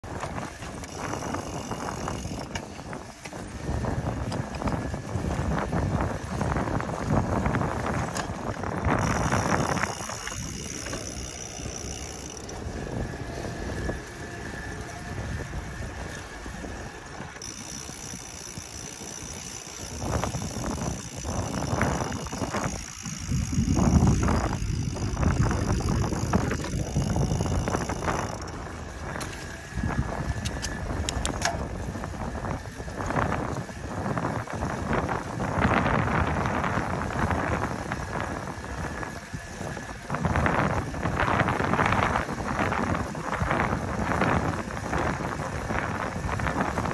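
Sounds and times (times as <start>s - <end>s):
bicycle tyres rolling: 0.0s - 46.9s
wind buffeting microphone: 0.0s - 46.9s.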